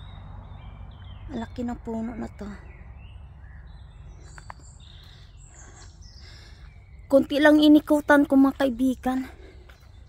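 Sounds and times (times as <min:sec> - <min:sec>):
songbirds chirping and whistling: 0:00.0 - 0:10.0.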